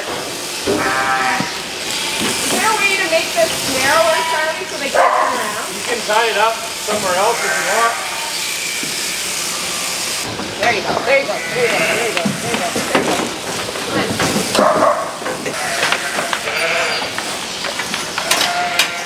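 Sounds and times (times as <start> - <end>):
sheep bleating: 0.7 - 3.1, 3.7 - 10.0, 11.1 - 12.3, 15.5 - 17.1, 18.2 - 19.0.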